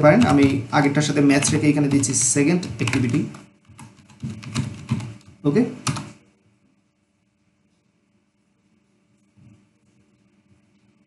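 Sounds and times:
person speaking: 0.0s - 3.5s, 4.2s - 6.1s
typing on computer keyboard: 0.1s - 0.7s, 1.3s - 6.2s.

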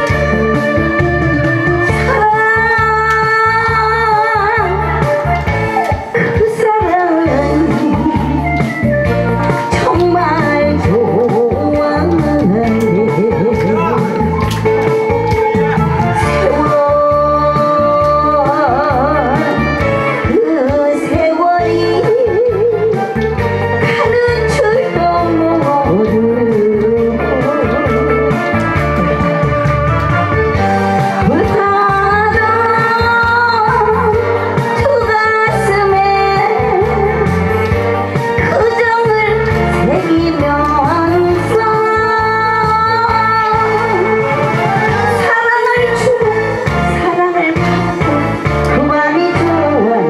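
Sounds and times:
woman singing into microphone: 0.0s - 14.2s, 16.2s - 29.8s, 30.5s - 50.0s
backing music with bass beat: 0.0s - 50.0s
instrumental accompaniment with guitar: 0.0s - 50.0s.

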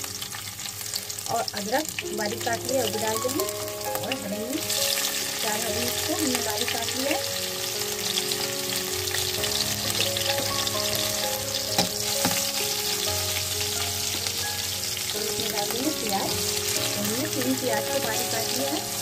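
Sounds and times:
spices sizzling in hot oil: 0.0s - 19.0s.

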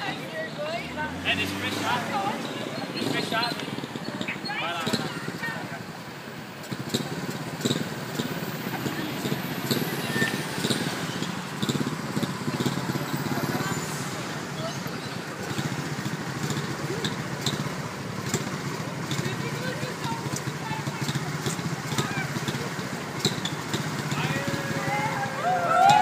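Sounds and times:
people talking indistinctly: 0.0s - 26.0s
traffic rumble: 0.0s - 26.0s.

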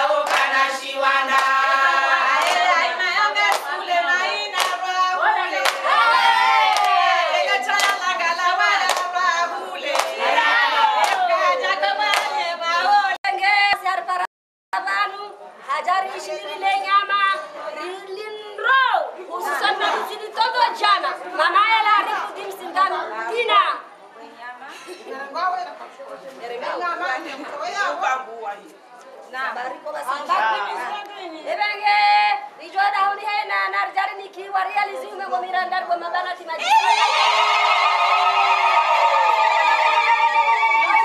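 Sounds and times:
women singing in unison: 0.0s - 14.3s, 31.1s - 41.0s
hand clap: 0.2s - 0.5s, 1.3s - 1.7s, 4.6s - 4.8s, 7.8s - 8.0s, 8.8s - 9.1s, 9.9s - 10.2s, 11.0s - 11.3s, 12.1s - 12.4s.

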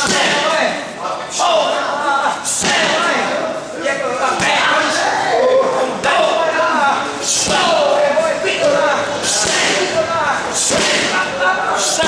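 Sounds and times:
strikes slapping on pads: 10.7s - 11.2s.

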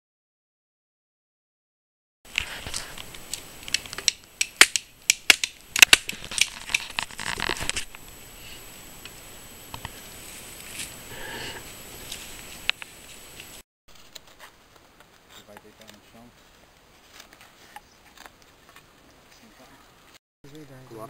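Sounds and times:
dry wood snapping: 2.3s - 8.0s
faint handling sounds: 12.0s - 19.8s.

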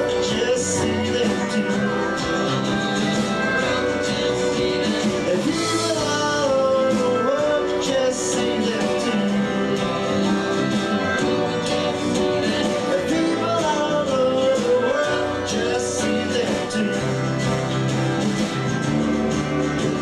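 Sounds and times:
bending lead guitar line: 0.0s - 20.0s
country-rock band playing: 0.0s - 20.0s.

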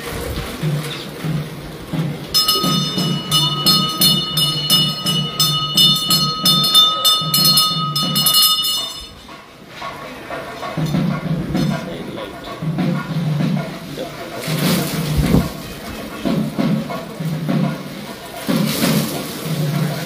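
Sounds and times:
rhythmic low beat: 1.4s - 9.3s
hand bell rung rapidly: 2.4s - 9.2s.

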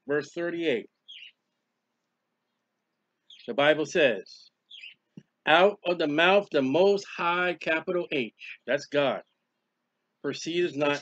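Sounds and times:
faint high chirp: 1.0s - 1.4s, 4.4s - 5.2s.

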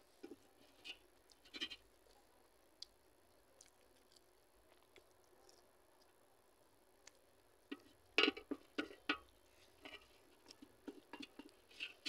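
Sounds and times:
chewing: 0.2s - 6.2s, 9.3s - 12.0s
hand scooping food from steel bowl: 7.7s - 12.0s.

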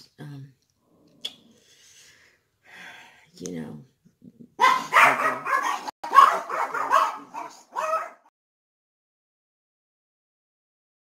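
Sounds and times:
dogs barking: 4.6s - 8.3s.

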